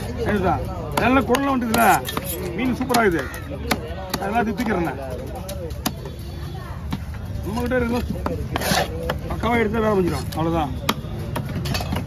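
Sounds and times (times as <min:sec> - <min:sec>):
voices talking: 0:00.0 - 0:12.0
knife scraping fish scales: 0:08.5 - 0:08.9.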